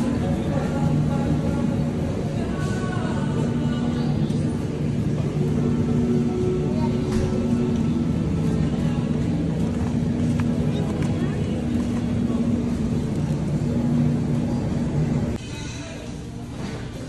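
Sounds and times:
indistinct voices: 0:00.0 - 0:17.0
refrigerated display case hum: 0:00.0 - 0:17.0.

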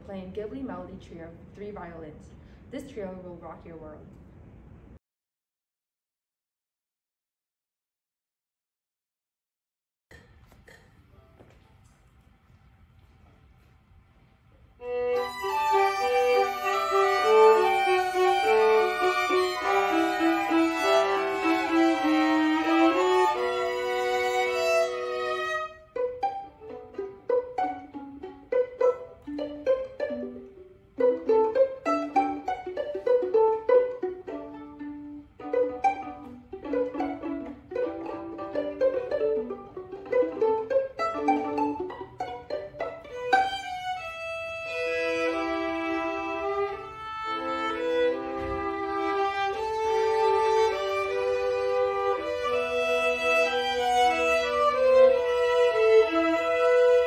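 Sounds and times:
violins bowed and plucked: 0:14.8 - 0:57.0.

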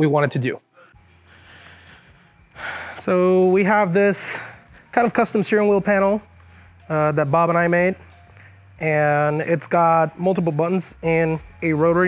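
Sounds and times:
person inhaling: 0:00.8 - 0:03.0.

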